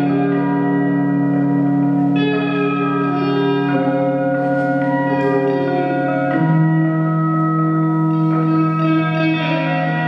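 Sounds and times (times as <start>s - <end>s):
ambient electric guitar drone: 0.0s - 10.0s.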